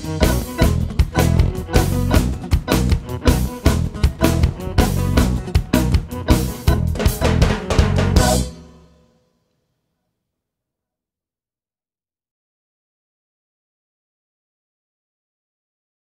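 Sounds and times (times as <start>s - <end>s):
bass: 0.0s - 8.9s
drum kit playing a busy beat: 0.0s - 9.0s
guitar: 0.0s - 9.1s.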